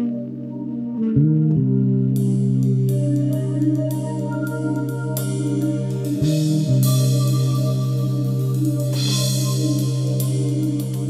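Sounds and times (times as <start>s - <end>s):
electric bass: 0.0s - 11.0s
electric keyboard chords: 0.0s - 11.0s.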